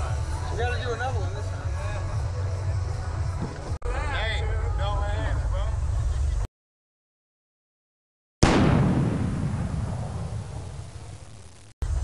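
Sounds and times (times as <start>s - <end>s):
loud boom: 8.4s - 12.0s.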